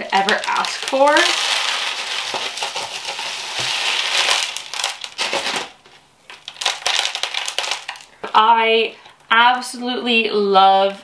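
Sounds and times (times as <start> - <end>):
granules crunching in plastic tub: 0.0 - 8.4.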